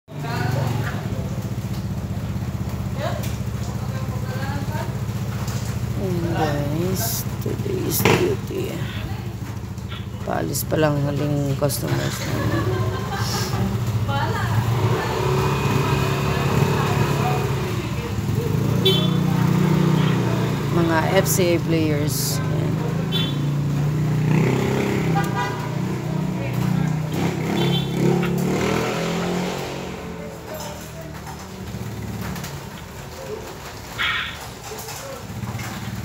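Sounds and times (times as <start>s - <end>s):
people talking: 0.1s - 1.4s, 3.0s - 5.0s, 6.0s - 9.4s, 10.2s - 23.1s, 24.8s - 31.7s
scooter engine idling: 0.1s - 36.0s
voices: 0.1s - 36.0s.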